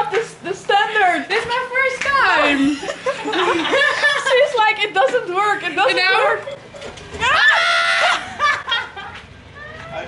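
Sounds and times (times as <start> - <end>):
woman shrieking with laughter: 7.2 - 8.8.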